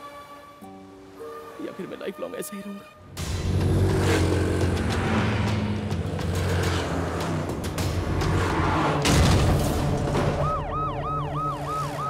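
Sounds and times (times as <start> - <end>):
vehicle engines droning: 3.1 - 10.6.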